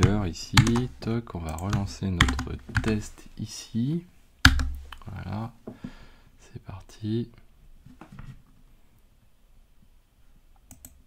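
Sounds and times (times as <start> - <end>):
keyboard or mouse clicks: 0.0 - 3.0, 4.4 - 5.1, 10.6 - 11.0.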